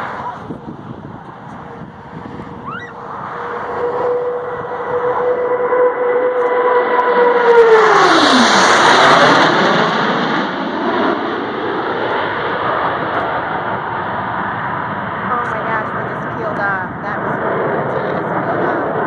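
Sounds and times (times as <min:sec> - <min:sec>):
jet roar: 0:00.0 - 0:19.0
jet whine falling in pitch: 0:01.3 - 0:14.2.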